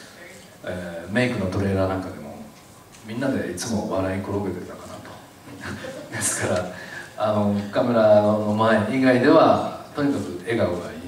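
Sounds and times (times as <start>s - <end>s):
man speaking into a microphone: 0.6s - 11.0s.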